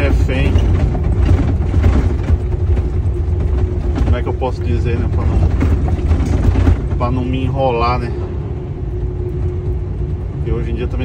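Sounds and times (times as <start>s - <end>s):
cab knocking and rattling: 0.0s - 11.0s
truck engine and road rumble: 0.0s - 11.0s.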